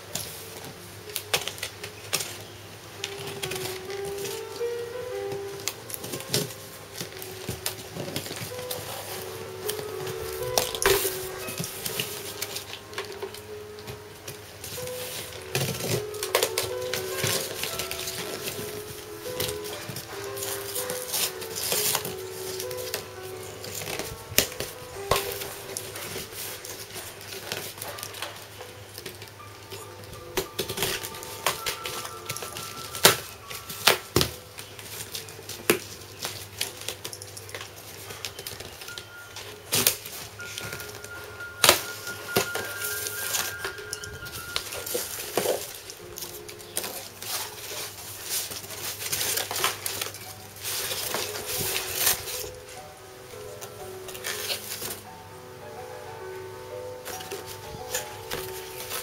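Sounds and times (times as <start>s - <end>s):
packing material rustling: 0.0s - 59.0s
quiet music: 0.0s - 59.0s.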